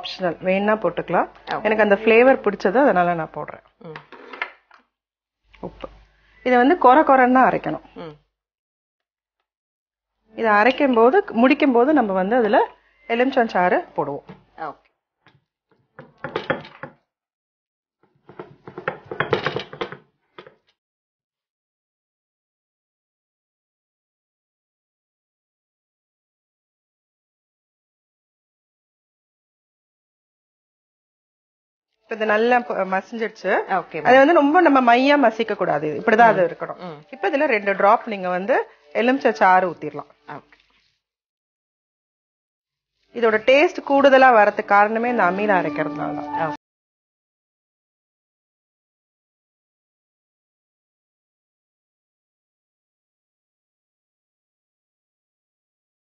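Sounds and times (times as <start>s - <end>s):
woman speaking: 0.0s - 4.1s, 6.5s - 8.2s, 10.4s - 14.8s, 32.1s - 40.5s, 43.2s - 46.6s.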